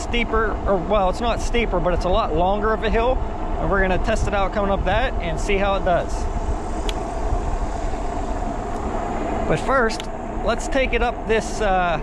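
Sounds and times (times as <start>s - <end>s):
tires humming on asphalt: 0.0s - 12.0s
wind rushing over microphone: 0.0s - 12.0s.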